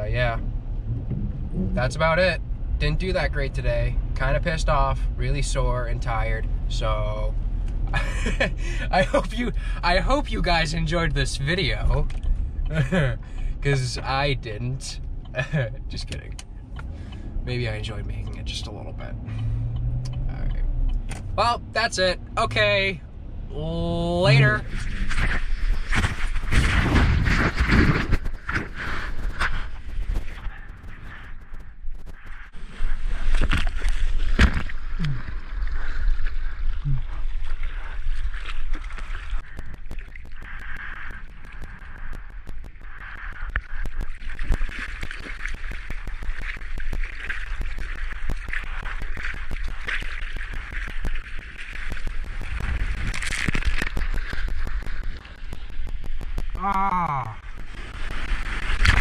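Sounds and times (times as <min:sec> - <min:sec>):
wind rumbling on microphone: 0:00.0 - 0:04.3, 0:24.3 - 0:56.6, 0:57.3 - 0:59.0
water sloshing and splashing: 0:32.4 - 0:56.6.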